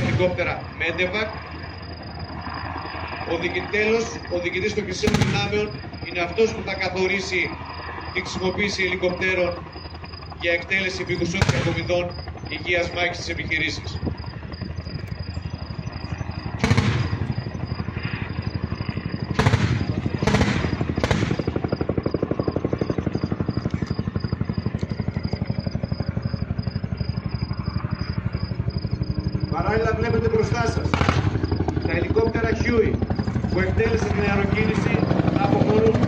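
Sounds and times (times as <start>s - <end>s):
loud echoing bangs: 0.0s - 0.8s, 4.9s - 6.0s, 11.1s - 12.2s, 16.6s - 18.1s, 19.2s - 22.2s, 30.8s - 31.6s
helicopter rotor chopping: 0.0s - 36.0s.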